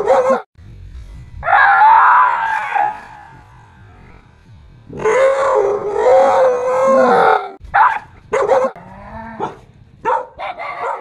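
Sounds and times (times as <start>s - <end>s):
dog yelping and barking: 9.4s - 11.0s.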